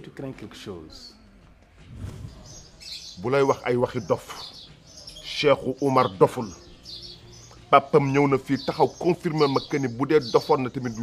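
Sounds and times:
small birds chirping: 0.2 - 11.0.

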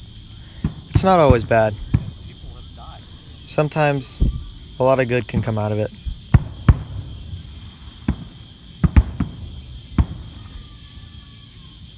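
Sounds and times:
distant fireworks bangs: 0.0 - 11.7.

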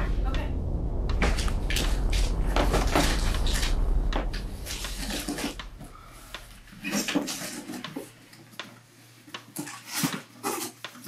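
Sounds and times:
low rumble: 0.0 - 8.2.

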